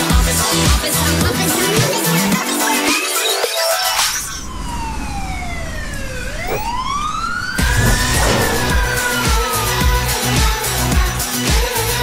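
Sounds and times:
siren-like wail: 4.2 - 9.8
low rumble: 7.6 - 10.2.

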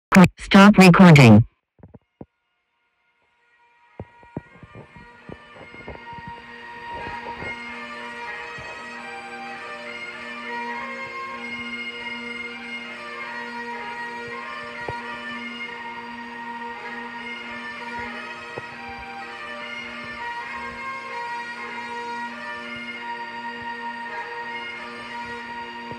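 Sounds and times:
bagpipes playing: 3.9 - 25.9.

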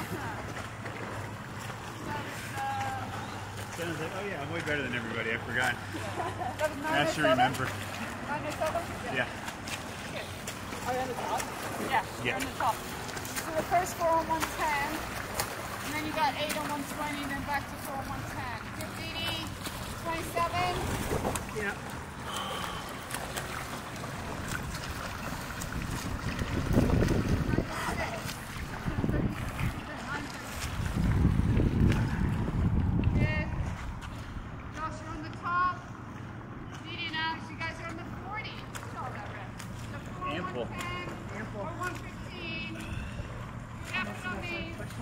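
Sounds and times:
pool water splashing: 0.0 - 45.0.

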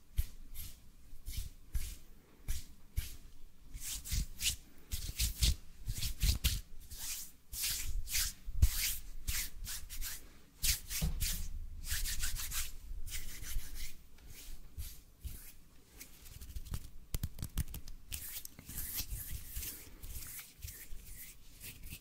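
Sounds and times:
hands rubbing together: 3.8 - 22.0.

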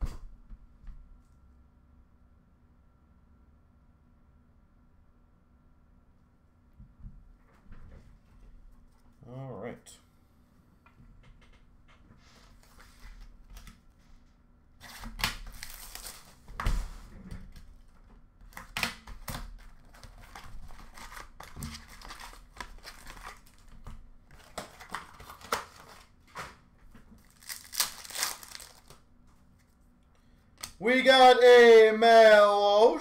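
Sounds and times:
plastic and foil wrappers crinkling: 14.8 - 16.4, 19.2 - 26.5, 27.1 - 29.0.

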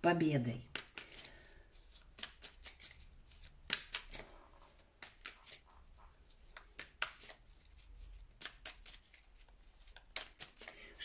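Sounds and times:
cards shuffling: 0.7 - 11.0.

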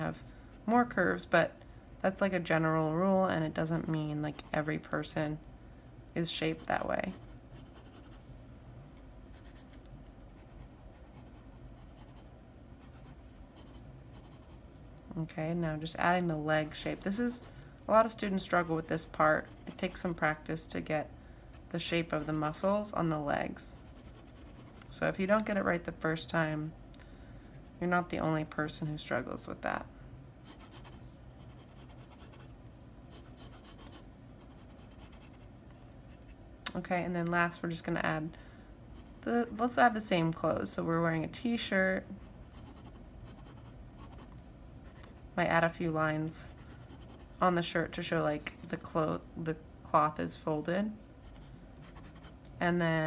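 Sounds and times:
pencil scratching on paper: 6.3 - 8.2, 10.4 - 14.6, 18.2 - 20.3, 22.1 - 22.6, 23.8 - 24.9, 30.5 - 32.5, 33.1 - 35.5, 42.2 - 45.2, 46.5 - 47.5, 51.2 - 52.4.

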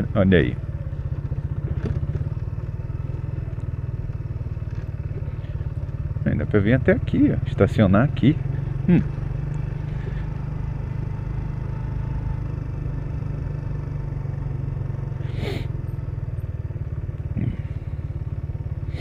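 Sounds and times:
motorcycle engine running: 0.0 - 19.0.

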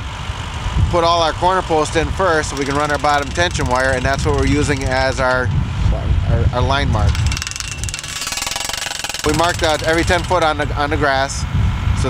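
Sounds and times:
tractor engine running low: 0.0 - 5.8, 7.0 - 12.0
post driver hammering steel post: 1.9 - 5.5, 7.1 - 11.1.

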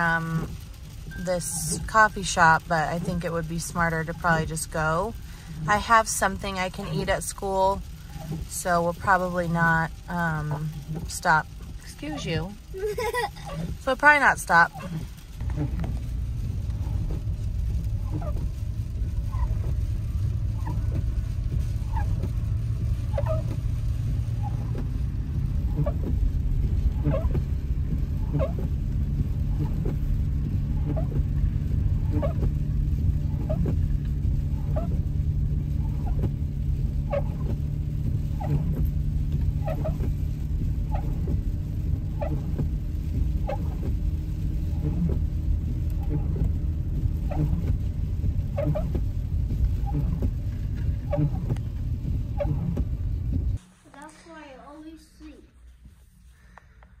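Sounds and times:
windshield wipers squeaking: 0.0 - 53.6
car engine and tyres rumbling: 0.0 - 57.0.

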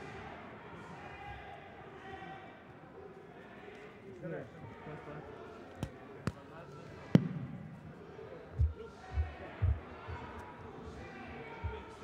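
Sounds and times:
faint murmur of voices: 0.0 - 12.0.

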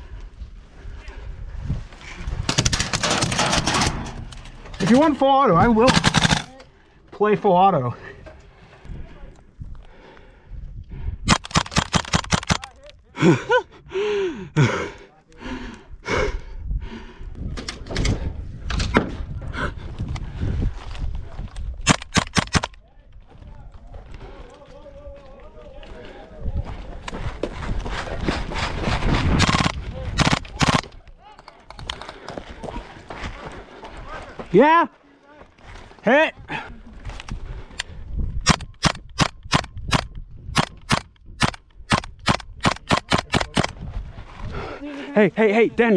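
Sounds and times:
airsoft rifle firing rapid bursts: 5.8 - 6.5, 29.4 - 30.8.

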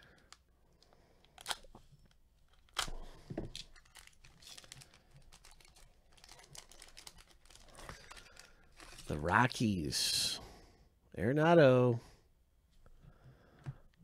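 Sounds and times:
wrapper crinkling: 1.3 - 9.3
wrapper ripping: 2.5 - 9.3.

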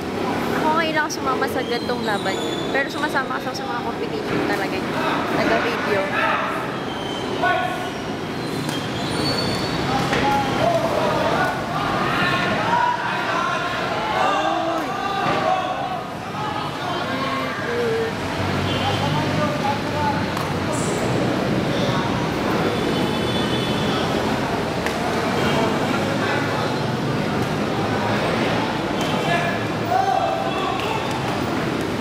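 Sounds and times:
crowd noise: 0.0 - 32.0.

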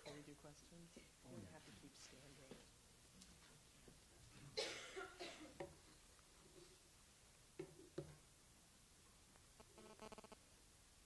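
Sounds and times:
person coughing: 4.6 - 5.6.

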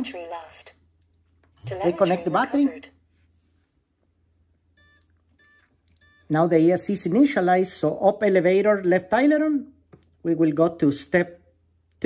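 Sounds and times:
faint short beeps from a motor: 4.8 - 6.3.

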